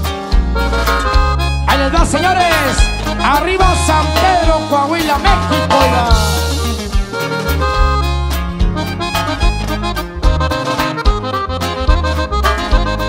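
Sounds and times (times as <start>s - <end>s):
accordion melody: 0.0s - 13.0s
walking bass line: 0.0s - 13.0s
steady drum beat: 0.1s - 11.3s.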